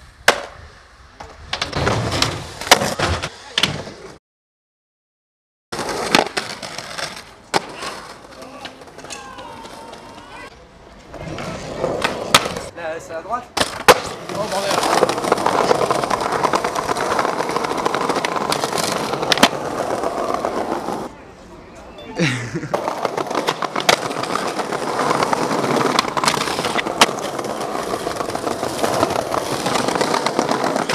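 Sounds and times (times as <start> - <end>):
skateboard wheels rolling on pavement: 0.0 - 4.2, 5.7 - 21.6, 22.3 - 30.9
skateboard clacks: 5.8 - 10.4, 13.6 - 21.1, 22.7 - 30.9.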